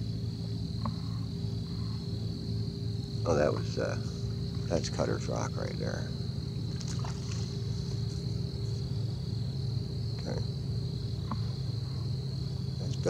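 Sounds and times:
insects chirring: 0.0 - 13.0
steady low rumble: 0.0 - 13.0.

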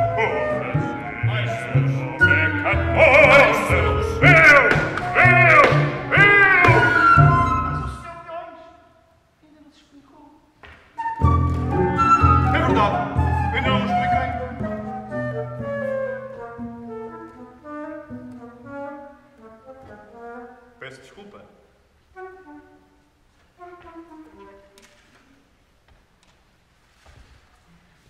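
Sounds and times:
small instrumental ensemble: 0.0 - 8.1, 10.6 - 21.2, 22.0 - 25.4.

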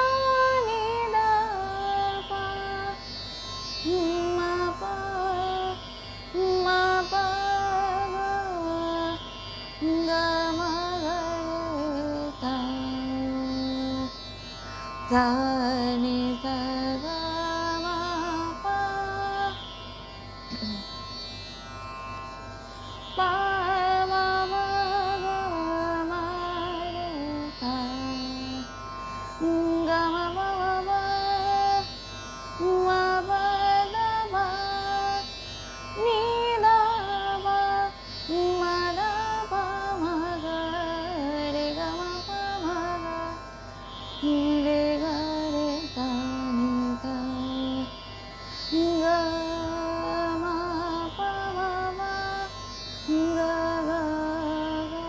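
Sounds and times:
woman singing: 0.0 - 3.1, 3.8 - 14.2, 15.0 - 19.7, 20.5 - 21.0, 23.2 - 28.7, 29.4 - 32.0, 32.6 - 35.3, 36.0 - 43.4, 44.2 - 48.0, 48.7 - 55.0.

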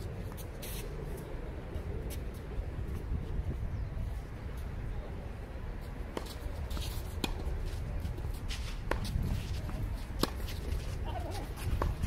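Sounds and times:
tennis balls struck by rackets: 6.1 - 12.0.

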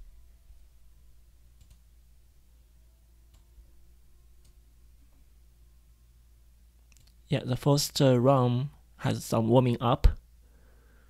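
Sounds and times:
faint low hum: 0.0 - 11.0
computer mouse clicks: 1.6 - 1.8, 6.9 - 7.2.

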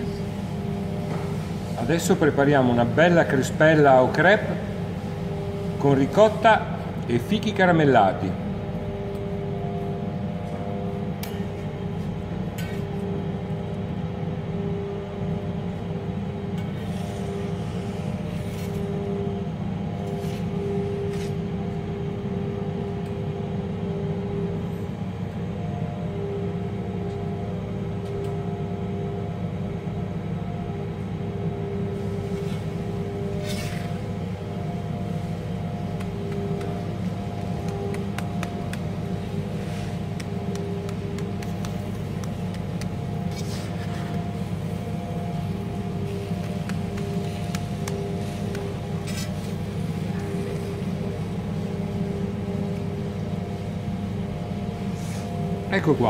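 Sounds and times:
low mechanical hum and rumble: 0.0 - 56.0.

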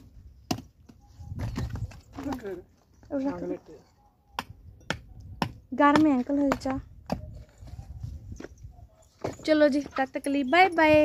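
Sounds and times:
hammer striking bricks: 0.0 - 2.5, 4.3 - 7.4
woman's voice: 9.4 - 11.0.

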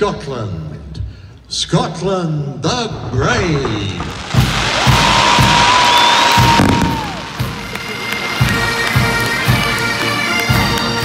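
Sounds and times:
fireworks thudding and crackling: 2.7 - 10.8
high whistling firework: 4.0 - 9.2
bagpipes playing: 6.6 - 11.0.

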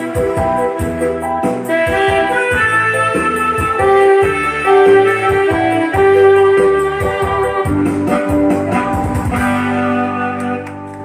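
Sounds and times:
electronic keyboard with guitar voice: 0.0 - 11.0
drum beat: 0.1 - 9.8.

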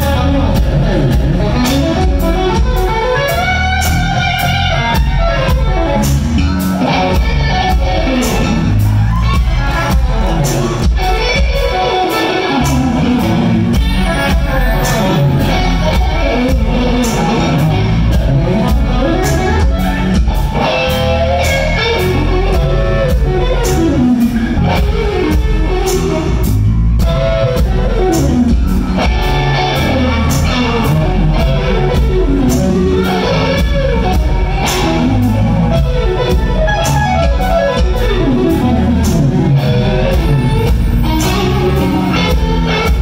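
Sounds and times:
bass: 0.0 - 43.0
drum kit: 0.0 - 43.0
electric guitar lead lines: 0.0 - 43.0.

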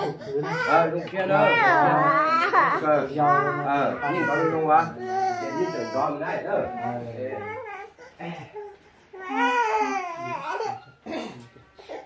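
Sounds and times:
men talking: 0.0 - 8.8.

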